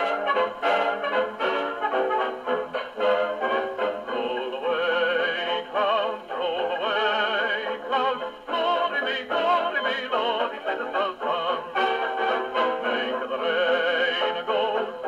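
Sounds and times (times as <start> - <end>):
dance band record on gramophone: 0.0 - 15.0
singing with wide vibrato: 4.0 - 15.0.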